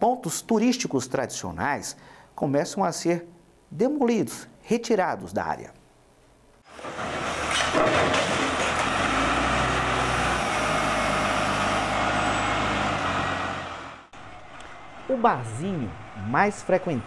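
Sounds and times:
diesel loader engine: 0:06.6 - 0:17.0
rubble crashing and clattering: 0:06.7 - 0:09.2.

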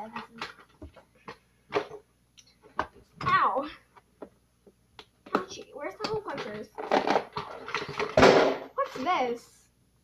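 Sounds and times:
person speaking: 0:00.0 - 0:00.6, 0:05.3 - 0:06.8, 0:08.7 - 0:09.6
small objects knocking: 0:05.0 - 0:09.1.

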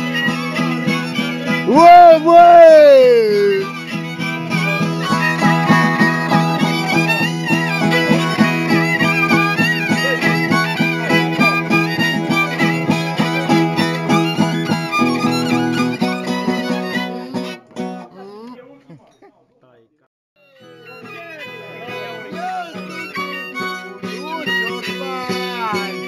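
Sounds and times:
fast chordal strumming: 0:00.0 - 0:18.1, 0:20.6 - 0:26.0
folk fiddle melody: 0:00.0 - 0:18.1, 0:20.4 - 0:26.0.

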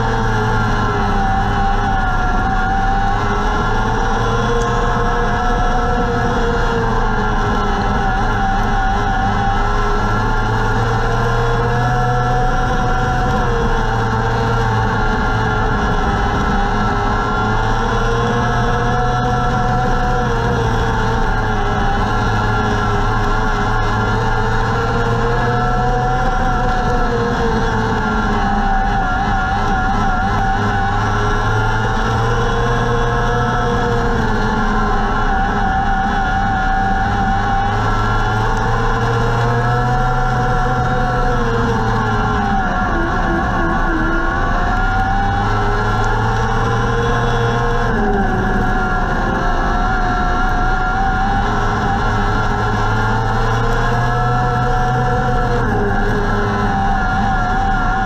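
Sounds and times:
race car engine under load: 0:00.0 - 0:58.0.

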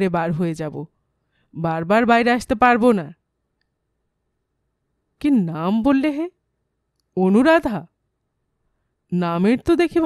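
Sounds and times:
woman reading aloud: 0:00.0 - 0:00.9, 0:01.6 - 0:03.2, 0:05.2 - 0:06.4, 0:07.2 - 0:07.9, 0:09.2 - 0:10.0.

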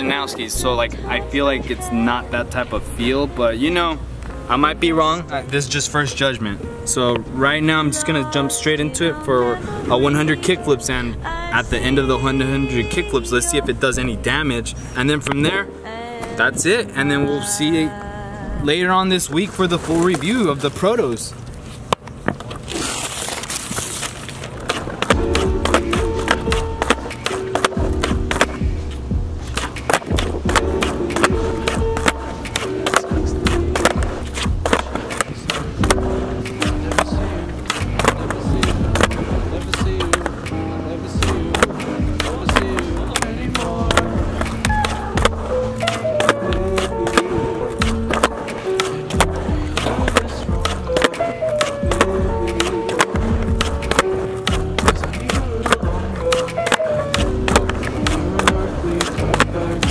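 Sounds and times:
skateboard wheels rolling: 0:21.6 - 0:59.9
skateboard landings: 0:24.4 - 0:59.9
skateboard tail pops: 0:24.6 - 0:28.8, 0:29.5 - 0:40.6, 0:41.2 - 0:59.9
music with steady beat: 0:25.1 - 0:59.9.

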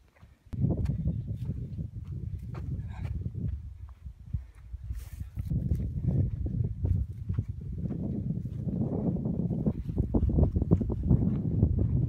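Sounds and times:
footsteps on grass: 0:00.0 - 0:09.0
wind on microphone: 0:00.5 - 0:12.0.

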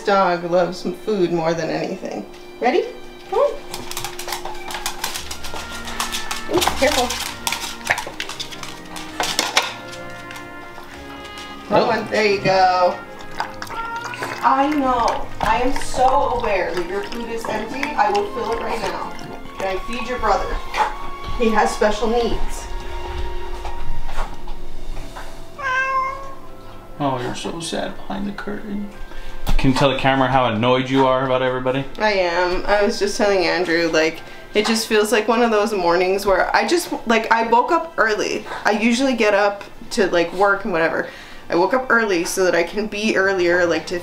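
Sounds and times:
background music: 0:00.0 - 0:44.0
metal dog bowl clinking: 0:00.8 - 0:22.6
cat meowing: 0:13.4 - 0:14.6, 0:25.6 - 0:26.6.

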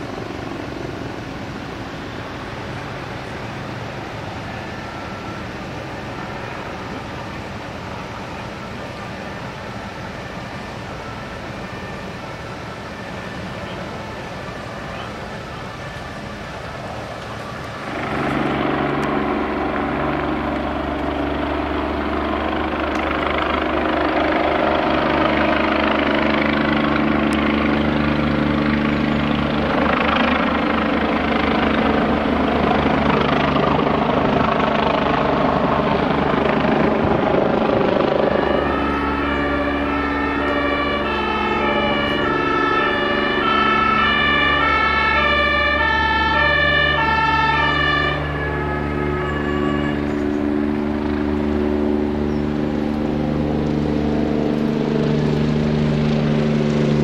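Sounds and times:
helicopter rotor drone: 0:00.0 - 0:57.0
two-tone siren: 0:00.0 - 0:57.0.

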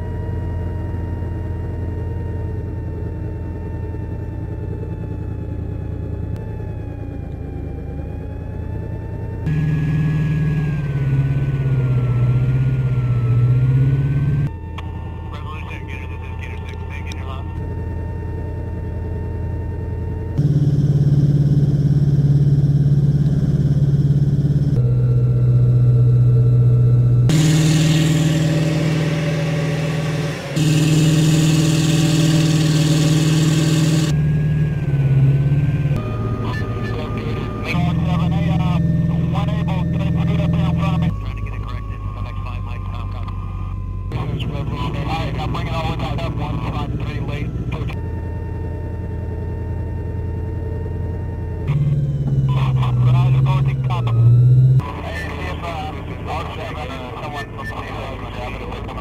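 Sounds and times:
diesel engine drone: 0:00.0 - 0:59.0.

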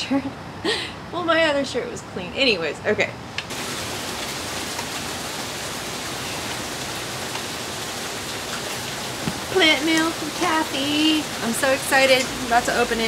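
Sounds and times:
heavy rain pouring: 0:03.5 - 0:13.0.

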